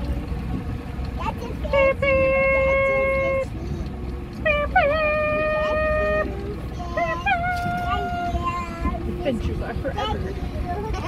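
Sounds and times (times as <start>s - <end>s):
outboard motor rumble: 0.0s - 11.0s
wind: 0.0s - 11.0s.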